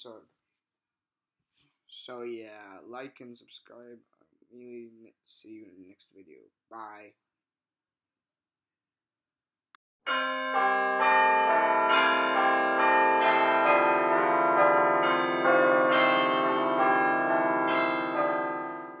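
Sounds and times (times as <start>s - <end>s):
bells ringing: 10.1s - 19.0s.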